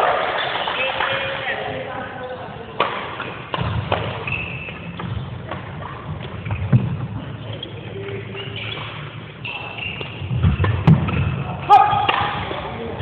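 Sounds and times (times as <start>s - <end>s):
players' voices: 0.4s - 3.6s, 11.1s - 13.0s
rackets striking shuttlecock: 2.8s - 7.0s, 8.0s - 12.6s.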